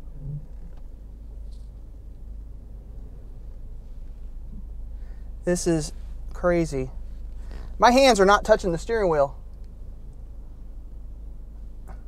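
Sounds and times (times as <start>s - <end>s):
car engine low rumble: 0.0s - 12.0s.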